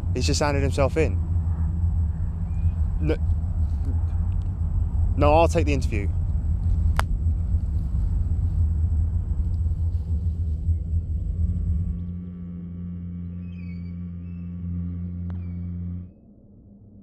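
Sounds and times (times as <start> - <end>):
faint high wavering tones: 0.0 - 17.0
low drone: 0.0 - 17.0
low rumbling ambience: 0.0 - 17.0.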